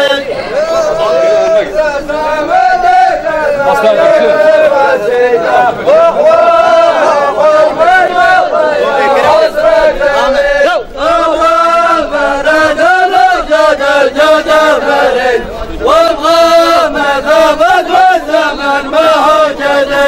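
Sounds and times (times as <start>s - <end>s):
men chanting in unison: 0.0s - 20.0s.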